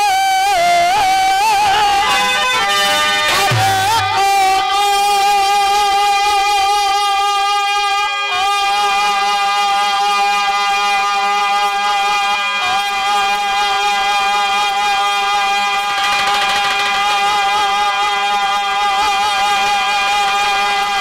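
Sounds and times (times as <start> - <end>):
folk melody instrument: 0.1 - 8.6, 15.2 - 18.8.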